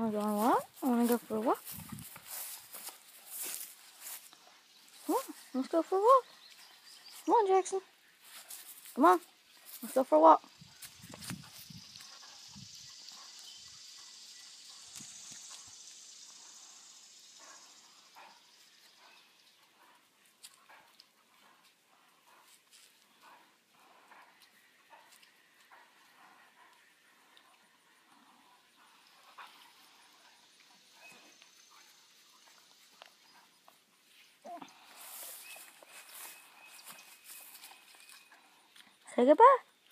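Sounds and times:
dog chewing and tugging leash: 17.4 - 39.0.

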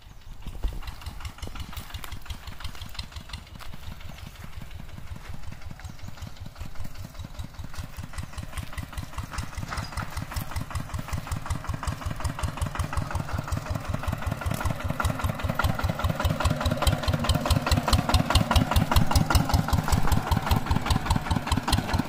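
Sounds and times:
tractor diesel engine chugging: 0.0 - 22.0.

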